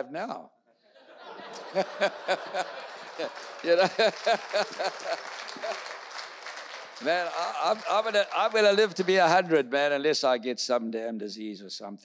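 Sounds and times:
audience applause and laughter: 0:01.0 - 0:09.5
man laughing in pulses: 0:03.7 - 0:05.8.

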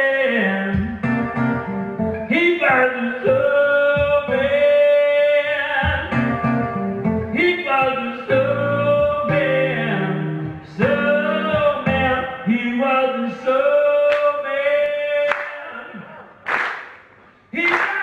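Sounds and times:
man singing long notes: 0:00.0 - 0:01.0, 0:02.3 - 0:06.2, 0:07.3 - 0:16.3.

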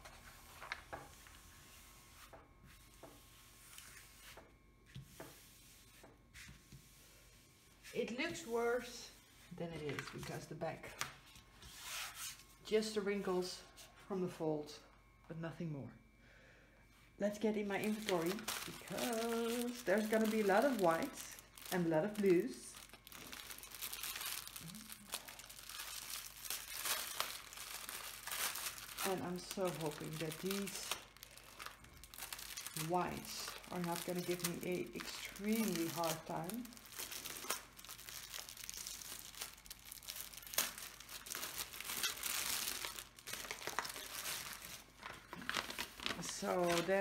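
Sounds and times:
plastic packaging crinkling: 0:00.0 - 0:01.4, 0:17.3 - 0:47.0.

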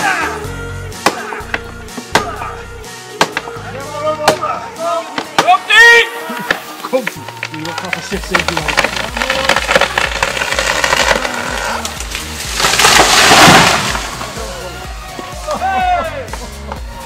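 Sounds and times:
voices shouting: 0:00.0 - 0:08.2, 0:14.1 - 0:17.0
tree cracking and splintering: 0:06.4 - 0:15.3
tree crashing through trees: 0:06.6 - 0:15.4.

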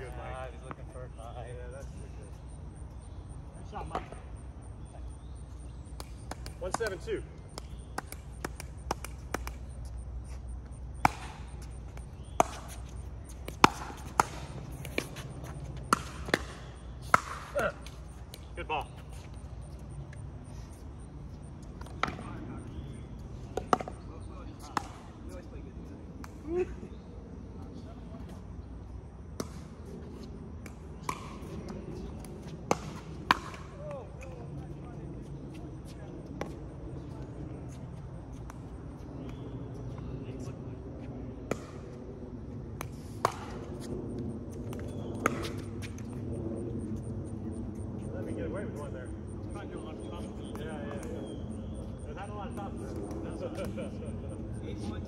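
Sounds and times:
ball bouncing on hard court: 0:05.6 - 0:10.0, 0:10.7 - 0:19.4, 0:21.8 - 0:25.1, 0:29.3 - 0:34.0, 0:41.4 - 0:42.0, 0:42.8 - 0:46.2
paddles hitting plastic ball: 0:05.9 - 0:09.8
faint voices talking: 0:46.9 - 0:55.0.

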